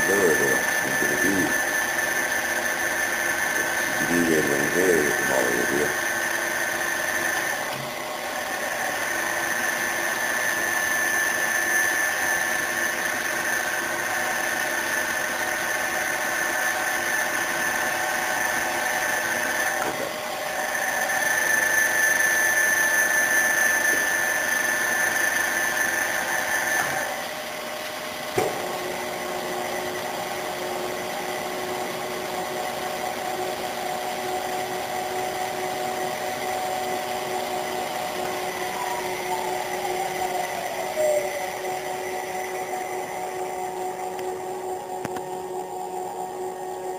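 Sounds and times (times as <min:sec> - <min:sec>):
milling machine high whine: 0:00.0 - 0:46.9.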